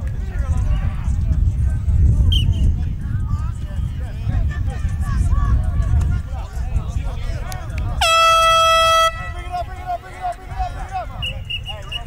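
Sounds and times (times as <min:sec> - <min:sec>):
voices: 0:00.0 - 0:12.0
air horn blast: 0:08.0 - 0:09.5.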